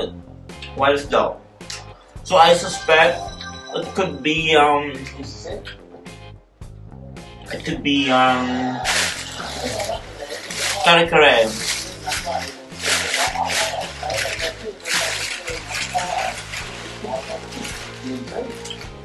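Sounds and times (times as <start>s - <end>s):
plastic bag rustling: 8.9s - 19.0s.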